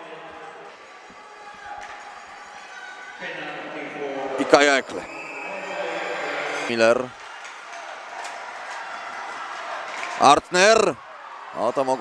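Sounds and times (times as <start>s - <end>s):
distant arena voices: 0.0s - 12.0s.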